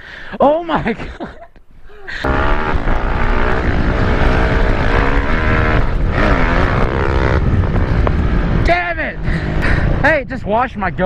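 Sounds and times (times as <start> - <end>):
dirt bike engine revving: 2.2 - 10.0
wind buffeting microphone: 2.2 - 11.0.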